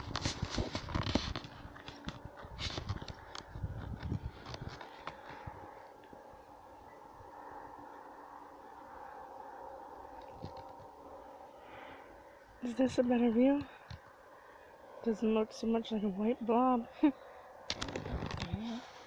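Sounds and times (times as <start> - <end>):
brush rustling: 0.0 - 5.8
faint steady hum: 0.0 - 19.0.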